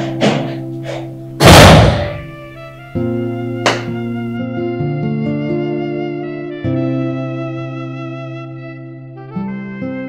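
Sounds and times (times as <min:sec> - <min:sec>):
background music with held chords: 0:00.0 - 0:10.0
loud heavy thud: 0:01.4 - 0:02.4.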